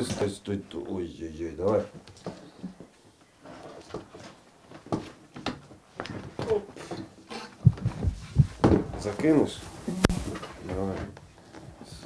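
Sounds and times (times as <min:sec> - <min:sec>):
heavy low thumps: 0:07.6 - 0:10.3.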